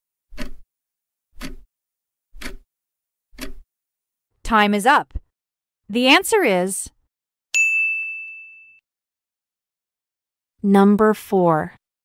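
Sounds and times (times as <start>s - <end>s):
high chime: 7.6s - 8.8s.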